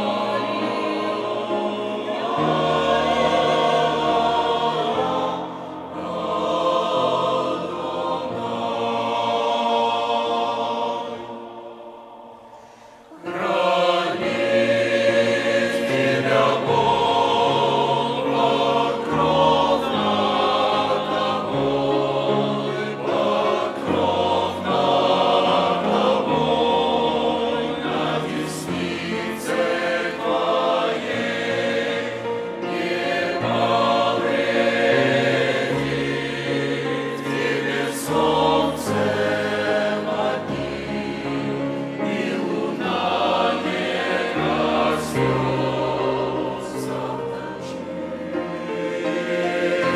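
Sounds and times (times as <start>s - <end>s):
choir singing a hymn: 0.0s - 49.9s.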